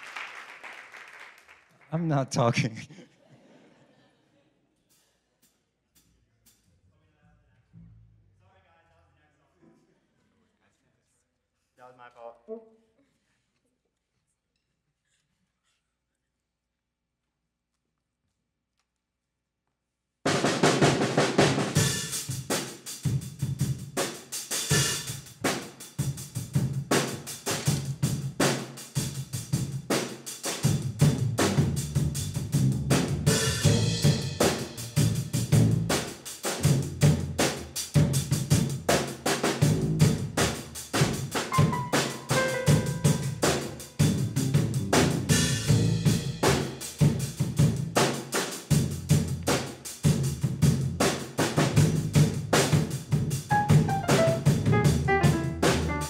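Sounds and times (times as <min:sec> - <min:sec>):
drum kit: 0:20.3 - 0:56.0
jazz band playing: 0:30.6 - 0:47.2, 0:53.3 - 0:56.0.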